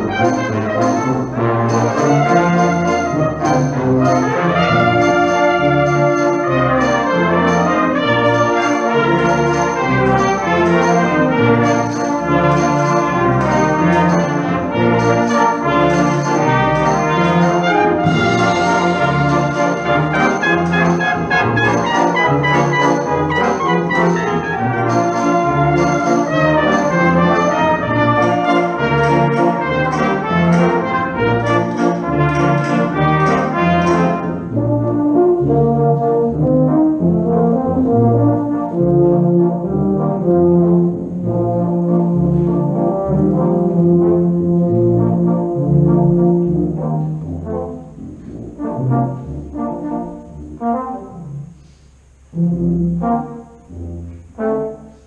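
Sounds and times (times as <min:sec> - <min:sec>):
brass band playing: 0:00.0 - 0:55.0.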